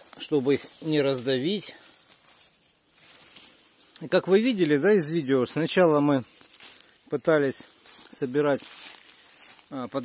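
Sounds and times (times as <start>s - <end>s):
dry leaves rustling: 0.0s - 10.0s.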